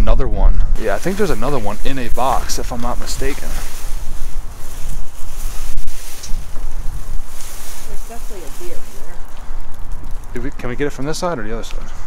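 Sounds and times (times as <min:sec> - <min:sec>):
wind buffeting microphone: 0:00.0 - 0:12.0
bubble wrap rustling: 0:00.8 - 0:11.4.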